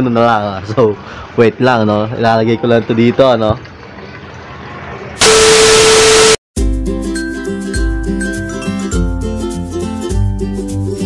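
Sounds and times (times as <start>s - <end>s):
steady tone: 5.2s - 6.4s
tv static hiss: 5.2s - 6.4s.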